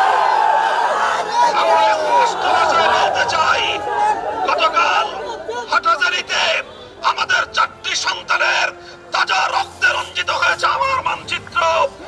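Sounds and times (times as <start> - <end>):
voices chattering: 0.0 - 12.0
man shouting through megaphone: 0.5 - 12.0.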